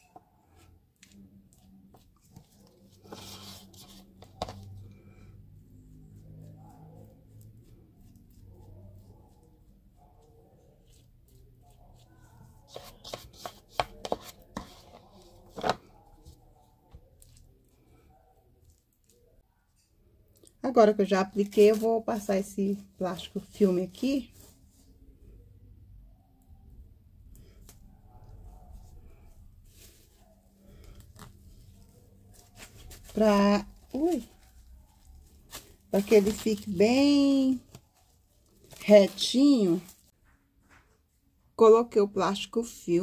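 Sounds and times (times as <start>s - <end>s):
plastic glove rustling: 0.0s - 19.4s, 20.8s - 24.8s, 27.4s - 40.2s
plastic cling film rustling: 21.1s - 22.6s, 29.6s - 40.1s.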